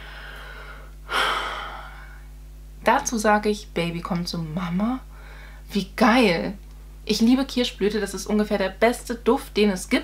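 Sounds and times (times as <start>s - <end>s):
woman gasping: 0.0s - 2.2s, 5.1s - 5.6s
faint room hiss: 0.0s - 10.0s.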